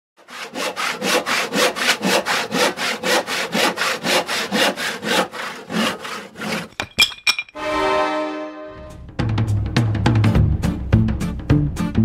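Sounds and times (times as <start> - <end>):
hand saw cutting wood: 0.2 - 6.8.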